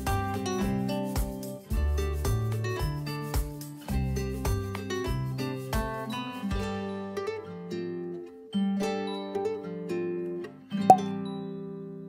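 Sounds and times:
plucked string instrumental music: 0:00.0 - 0:12.0.

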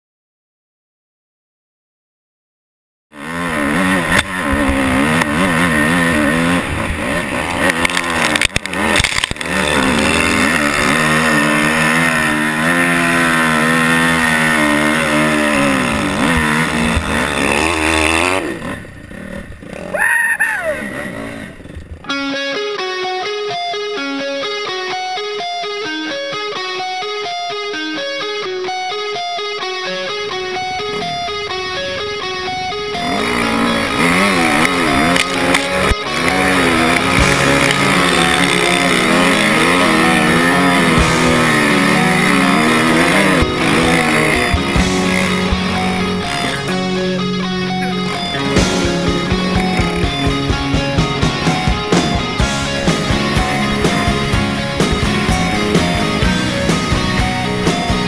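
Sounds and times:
guitar music: 0:03.1 - 0:19.6, 0:20.8 - 0:58.0
dirt bike engine revving: 0:03.1 - 0:23.2, 0:23.9 - 0:58.0.

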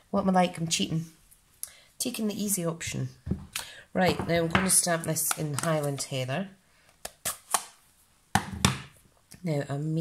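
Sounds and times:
ink pad knocking on desk: 0:08.4 - 0:08.9.

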